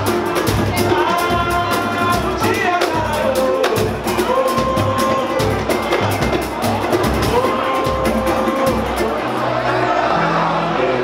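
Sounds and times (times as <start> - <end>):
hand percussion beating: 0.0 - 9.5.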